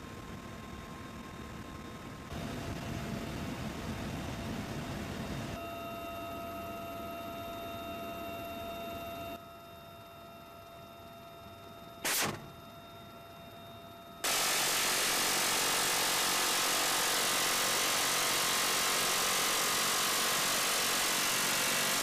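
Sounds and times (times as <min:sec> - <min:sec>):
helicopter engine and rotor noise: 0:00.0 - 0:22.0
turbine whine: 0:00.0 - 0:22.0.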